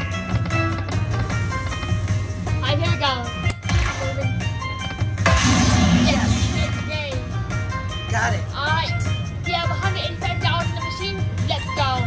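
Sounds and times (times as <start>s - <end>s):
slot machine music and chimes: 3.6s - 4.4s.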